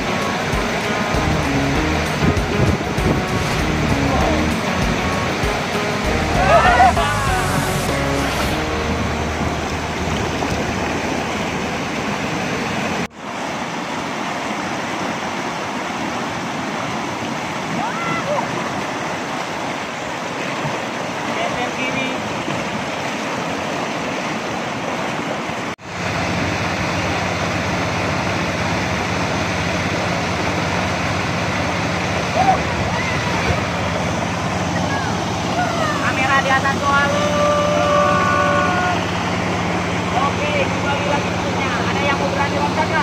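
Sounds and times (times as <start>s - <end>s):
river rapids rushing: 0.0s - 43.0s
people calling out: 3.7s - 8.5s, 17.7s - 18.6s, 32.3s - 33.8s, 34.7s - 39.2s.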